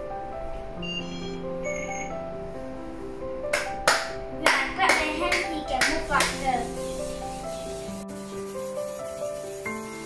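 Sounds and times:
background music: 0.0s - 10.0s
child clapping hands: 3.5s - 6.5s.

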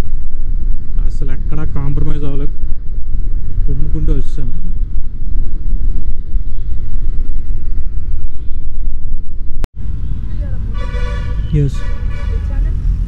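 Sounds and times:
wind buffeting microphone: 0.0s - 9.6s
motorcycle engine and road noise: 0.0s - 13.0s.

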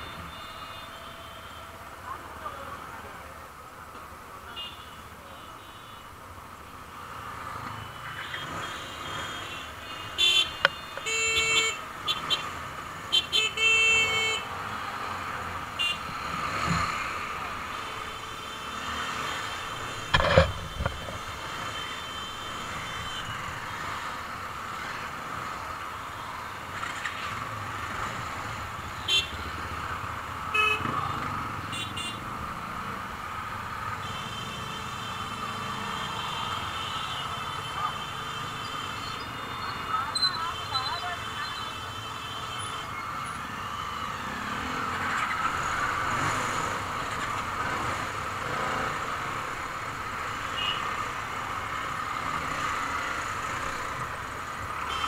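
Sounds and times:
engine and road noise: 0.0s - 55.0s
vehicle horns honking: 7.9s - 12.5s, 13.1s - 14.5s, 30.5s - 32.2s, 50.5s - 50.9s, 54.8s - 55.0s.

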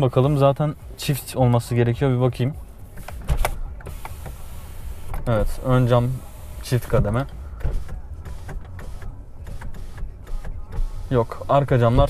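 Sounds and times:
power window motor running: 2.9s - 12.0s.

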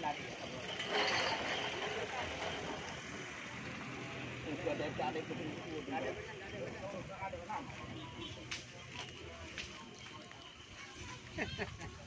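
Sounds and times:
outdoor noise: 0.0s - 12.0s
people talking in background: 0.0s - 12.0s.

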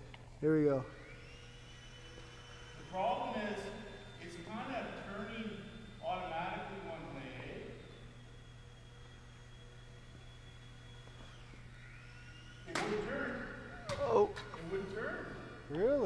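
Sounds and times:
high whine of electric motor: 0.0s - 16.0s.

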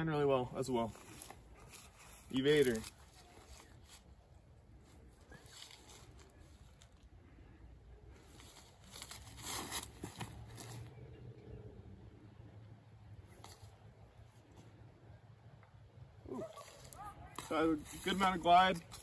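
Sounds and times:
footsteps on grass and leaves: 0.6s - 7.0s, 8.2s - 11.0s, 16.4s - 19.0s.

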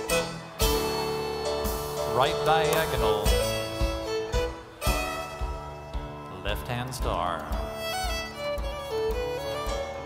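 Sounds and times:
dance band music: 0.0s - 10.0s
fiddle: 0.0s - 10.0s.

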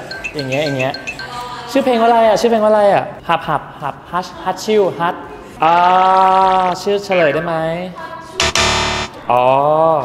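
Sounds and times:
wrong answer buzzer: 8.4s - 9.3s.

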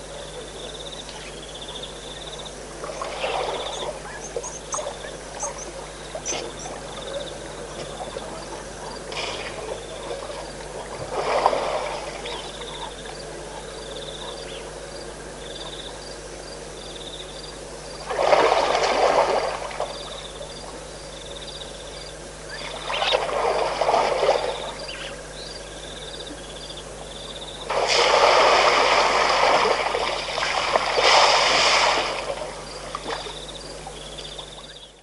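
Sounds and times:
water rushing and sloshing: 2.7s - 14.4s, 17.8s - 20.9s, 22.5s - 25.2s, 27.7s - 34.6s.

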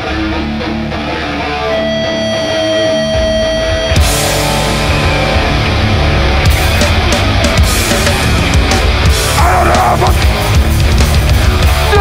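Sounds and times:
punk band playing live: 0.0s - 12.0s
held high guitar note: 1.4s - 6.4s.

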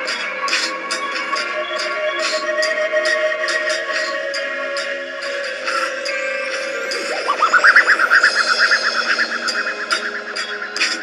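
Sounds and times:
electronic music: 1.8s - 11.0s
warbling pulsing tone: 6.9s - 10.8s.

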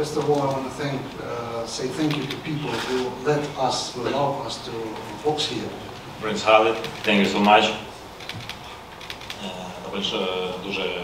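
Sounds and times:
man speaking: 0.0s - 7.9s, 9.4s - 11.0s.

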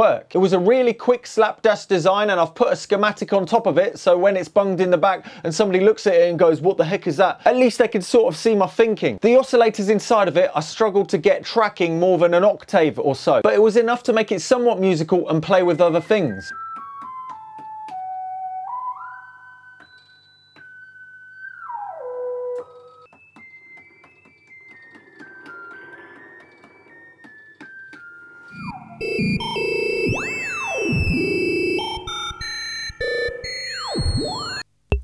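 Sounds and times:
synthesizer sequence: 25.6s - 35.0s.

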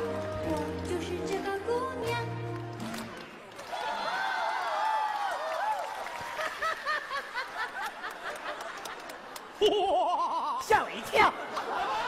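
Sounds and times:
person giggling: 9.6s - 10.6s.

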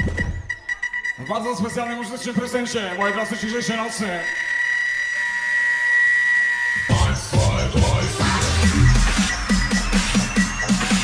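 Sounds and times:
high synth tone: 0.0s - 11.0s
electronic beat with heavy bass: 6.8s - 11.0s.

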